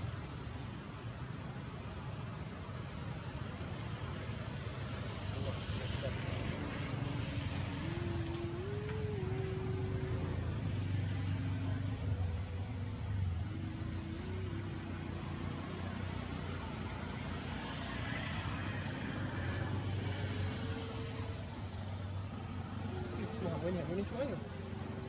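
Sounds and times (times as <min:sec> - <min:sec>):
motor engine running: 0:05.2 - 0:25.0.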